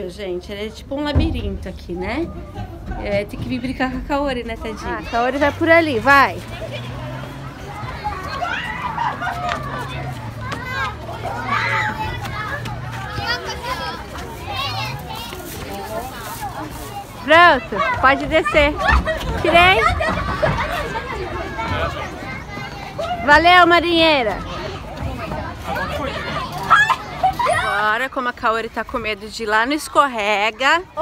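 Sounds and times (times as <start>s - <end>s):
children's voices calling and chattering: 0.0s - 31.0s.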